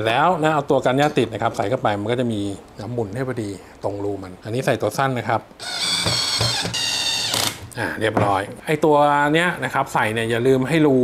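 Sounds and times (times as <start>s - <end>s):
cordless drill driving screw: 5.6s - 7.7s.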